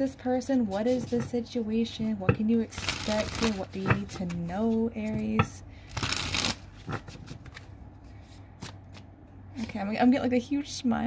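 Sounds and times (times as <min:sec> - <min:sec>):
cards shuffling: 0:05.9 - 0:07.7.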